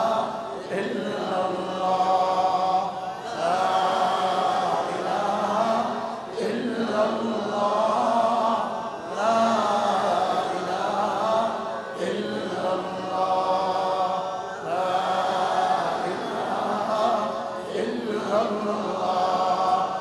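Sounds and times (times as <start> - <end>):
man chanting: 0.0 - 20.0.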